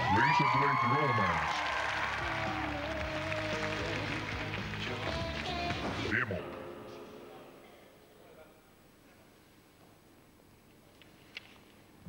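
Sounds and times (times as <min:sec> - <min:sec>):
pop song with person singing: 0:01.9 - 0:07.2.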